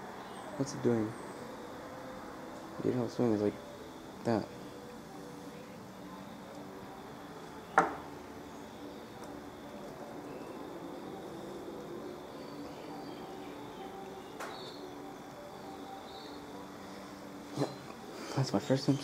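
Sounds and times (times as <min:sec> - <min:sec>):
faint steady tones: 0:00.0 - 0:19.0.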